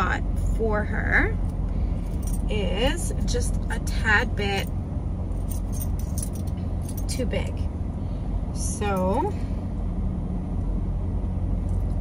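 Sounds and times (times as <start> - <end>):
low hum inside car: 0.0 - 12.0
metallic clinks of harness buckles: 2.0 - 2.5, 5.3 - 7.2.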